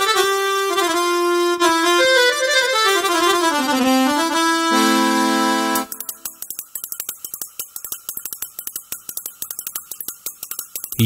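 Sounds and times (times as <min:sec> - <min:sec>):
fast dry percussion taps: 0:05.8 - 0:11.0.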